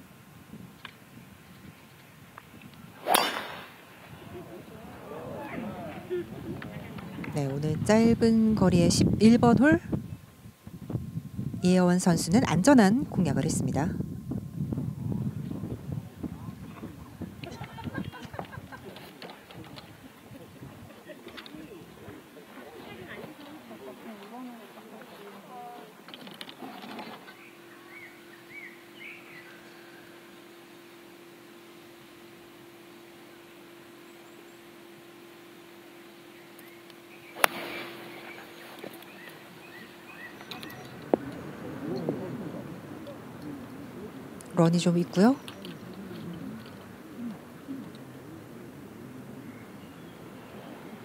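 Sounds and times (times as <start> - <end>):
faint steady hum: 0.0 - 51.0
birds chirping: 1.0 - 10.3, 25.6 - 51.0
golf club striking ball: 3.0 - 3.8, 37.4 - 38.1
murmuring voices: 3.9 - 9.8, 14.9 - 27.9, 37.4 - 51.0.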